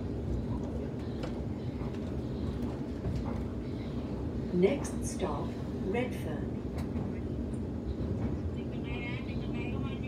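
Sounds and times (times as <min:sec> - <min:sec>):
electric train rumbling: 0:00.0 - 0:10.0.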